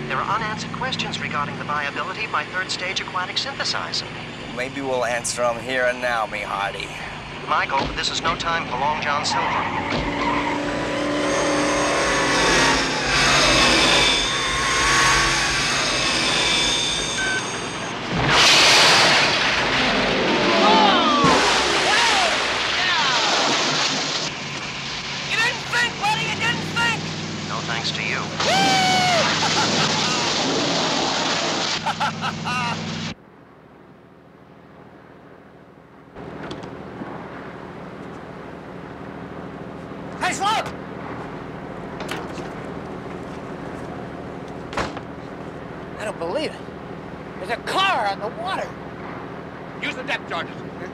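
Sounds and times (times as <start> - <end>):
car engine running hard: 0.0 - 22.2.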